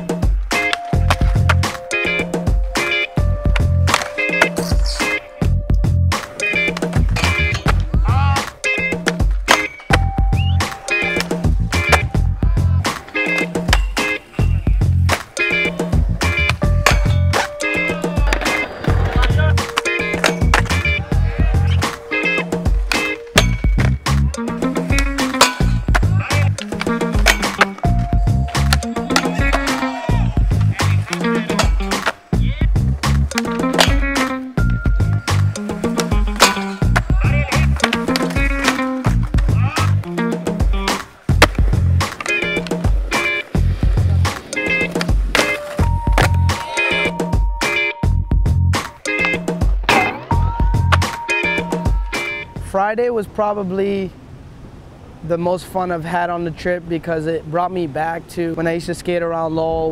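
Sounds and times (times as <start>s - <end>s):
skateboard wheels rolling: 0.0s - 5.3s, 6.1s - 47.9s, 48.7s - 52.5s
music with steady beat: 0.0s - 52.6s
skateboard clacks and impacts: 9.0s - 10.1s, 18.1s - 20.9s, 24.9s - 29.8s, 30.5s - 32.2s, 33.3s - 34.4s, 35.0s - 39.6s, 40.6s - 46.7s.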